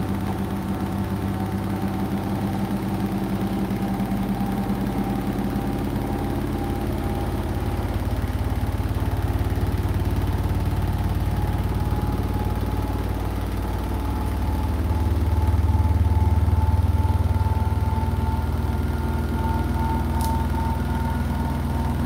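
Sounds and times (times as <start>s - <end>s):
washing machine humming: 0.0s - 22.0s.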